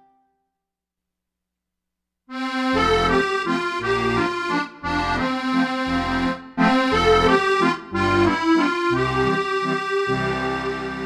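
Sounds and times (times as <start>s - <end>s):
accordion playing dance melody: 2.3s - 11.0s.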